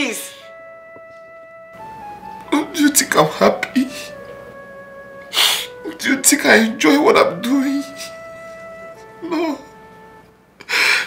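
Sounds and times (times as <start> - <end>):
music of sustained held notes: 0.0 - 11.0.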